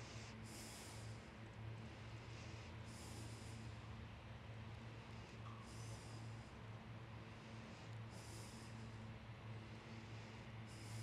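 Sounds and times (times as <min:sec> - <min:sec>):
faint steady low hum: 0:00.0 - 0:11.0
soft breaths close to microphone: 0:00.0 - 0:11.0.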